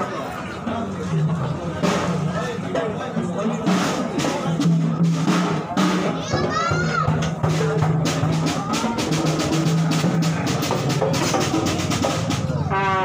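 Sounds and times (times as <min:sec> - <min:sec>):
crowd voices: 0:00.0 - 0:13.0
fast drum strikes: 0:00.8 - 0:13.0
procession band playing: 0:03.5 - 0:13.0
children shouting: 0:05.5 - 0:13.0.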